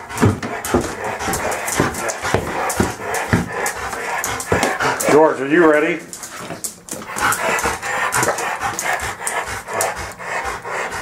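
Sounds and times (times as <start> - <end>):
dog panting: 0.0 - 11.0
dog claws clicking on tiles: 0.1 - 11.0.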